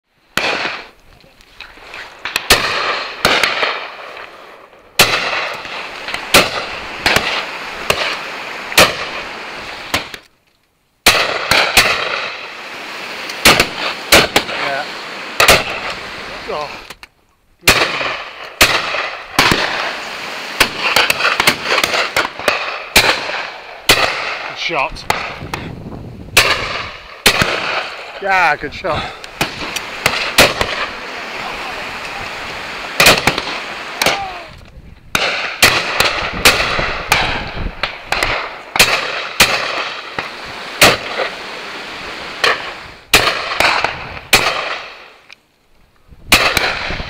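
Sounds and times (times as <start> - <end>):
shotgun shots: 0.3 - 1.0, 2.2 - 4.4, 5.0 - 10.2, 11.0 - 12.6, 13.3 - 16.7, 17.6 - 25.7, 26.3 - 34.5, 35.1 - 41.5, 42.4 - 45.2, 46.3 - 47.0
voices: 28.1 - 35.0.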